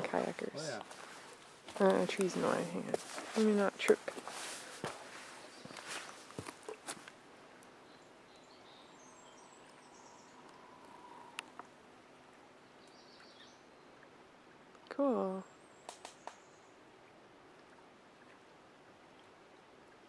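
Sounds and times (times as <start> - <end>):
lakeside ambience: 0.0 - 20.0
footsteps on ground: 0.8 - 7.1.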